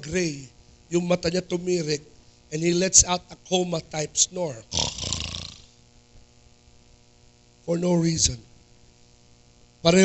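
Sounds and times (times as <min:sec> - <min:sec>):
faint hum: 0:00.0 - 0:10.0
man imitating a snore: 0:04.7 - 0:05.7.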